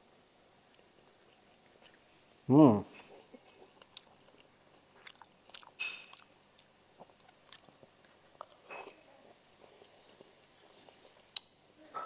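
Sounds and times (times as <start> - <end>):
quiet chewing: 0.1 - 11.6.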